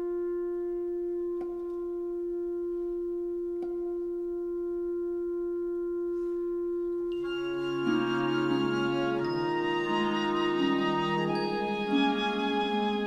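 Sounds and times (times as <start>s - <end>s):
wind instrument long note: 6.0s - 13.0s.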